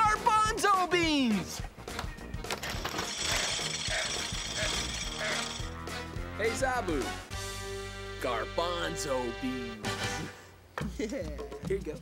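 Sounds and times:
background music: 0.0s - 12.0s
beans rattling in a container: 2.6s - 5.7s.

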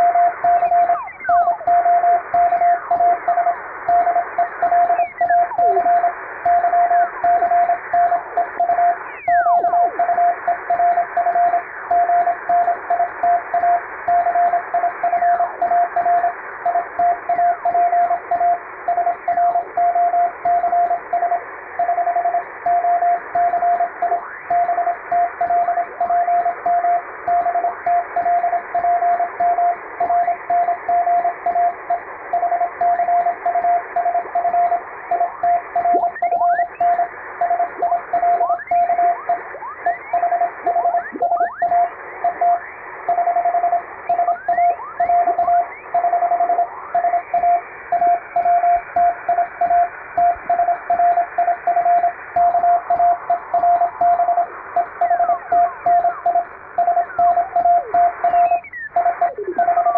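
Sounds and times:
morse code tone: 0.0s - 59.9s
radio hiss: 39.0s - 43.1s.

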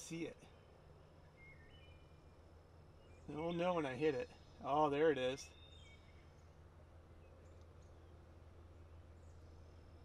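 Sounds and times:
faint bird chirps: 0.0s - 10.0s
low steady hum: 0.0s - 10.0s.

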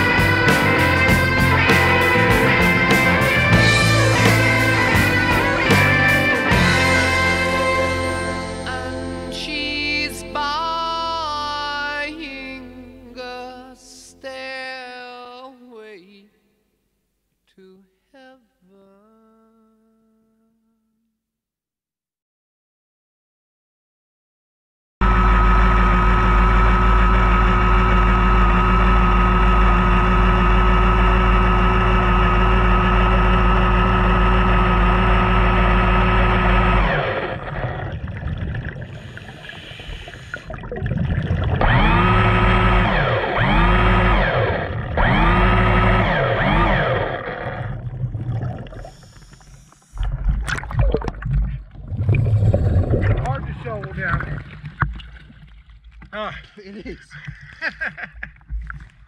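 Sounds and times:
whines rising and falling in pitch: 0.0s - 8.2s, 25.0s - 54.8s
steady droning hum underwater: 25.0s - 59.0s
choppy splashing water: 36.9s - 42.6s, 47.2s - 56.2s.

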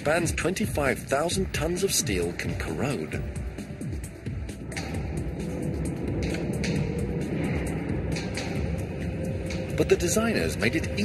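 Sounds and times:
low steady drone: 0.0s - 11.0s
light percussive ticks: 6.2s - 7.2s.

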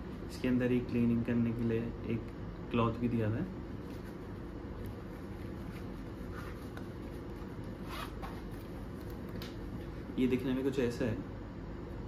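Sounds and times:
zipper being pulled: 7.8s - 8.3s.

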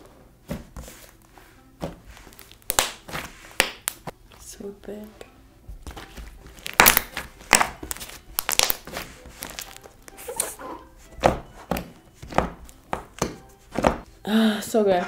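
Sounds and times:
slime popping and crackling: 2.4s - 4.1s, 6.5s - 10.4s.

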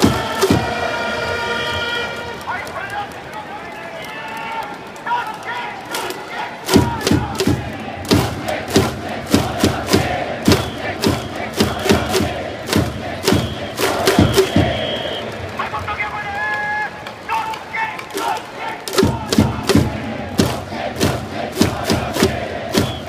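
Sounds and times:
fans chanting: 0.0s - 2.4s, 5.2s - 15.9s, 17.2s - 23.0s
drums beating: 0.0s - 2.7s, 5.8s - 23.0s
trumpets playing fanfare: 0.0s - 2.7s
crowd cheering: 0.0s - 23.0s.

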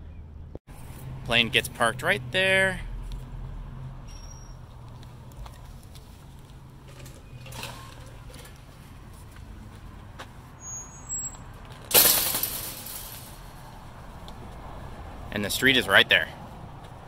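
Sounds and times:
street traffic hum: 0.0s - 17.0s
truck air brakes hissing: 10.6s - 13.6s.

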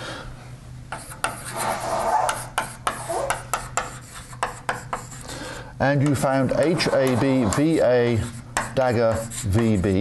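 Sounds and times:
chalk writing on blackboard: 0.9s - 5.4s, 6.0s - 10.0s.

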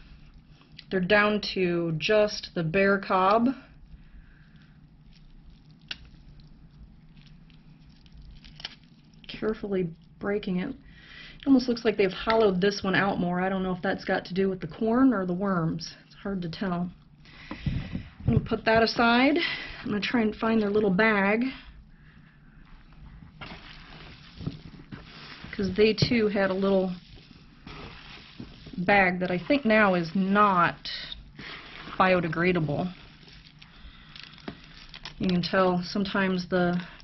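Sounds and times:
corn cob crackling being broken: 5.2s - 9.3s, 33.4s - 35.3s
hands rustling through soil: 22.9s - 35.3s.

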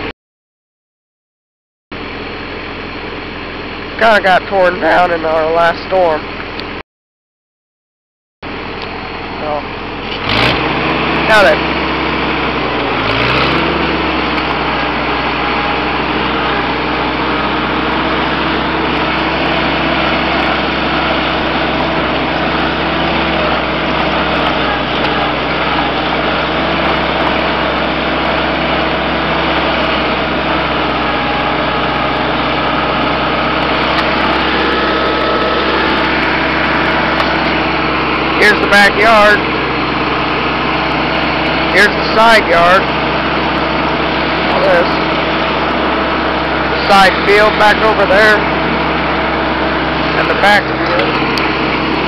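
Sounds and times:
tractor engine running: 1.9s - 6.8s, 8.4s - 52.0s.

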